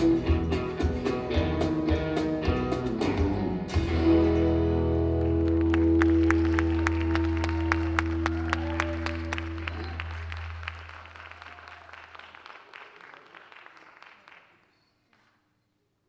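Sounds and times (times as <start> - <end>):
audience applause: 5.2 - 15.4.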